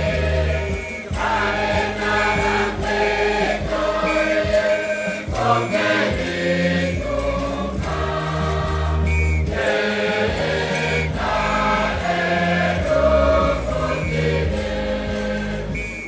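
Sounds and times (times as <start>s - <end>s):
choir singing a hymn: 0.0s - 16.0s.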